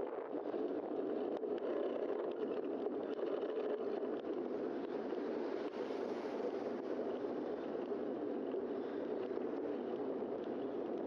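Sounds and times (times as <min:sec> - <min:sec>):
bicycle tyres rolling on pavement: 0:00.4 - 0:11.0.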